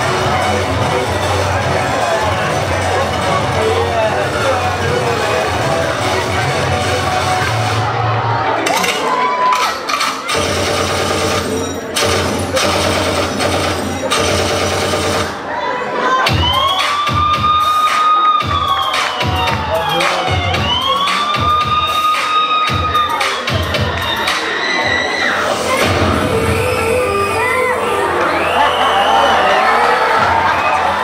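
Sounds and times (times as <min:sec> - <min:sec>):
audience cheering and shouting: 0:00.0 - 0:10.6, 0:15.2 - 0:31.0
dance music: 0:00.0 - 0:31.0.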